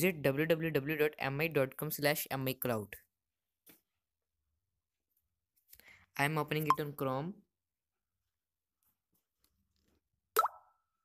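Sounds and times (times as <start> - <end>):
rising electronic plop: 10.4 - 10.7.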